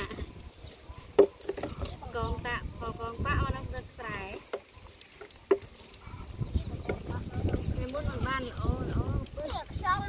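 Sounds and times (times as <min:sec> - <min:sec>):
sharp clicks: 0:04.5 - 0:10.0.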